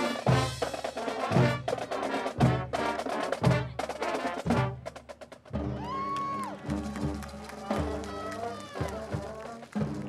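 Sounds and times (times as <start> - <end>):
band and percussion hits: 0.0 - 6.0.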